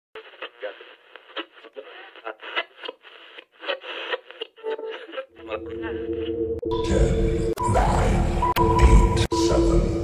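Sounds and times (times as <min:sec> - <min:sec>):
static crackles: 0:00.2 - 0:05.6
tinny voice over radio: 0:00.2 - 0:10.0.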